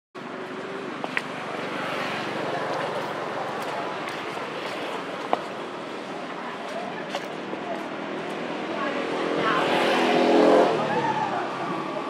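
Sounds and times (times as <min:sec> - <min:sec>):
motor vehicle passing by: 0:00.5 - 0:06.1, 0:08.0 - 0:12.0.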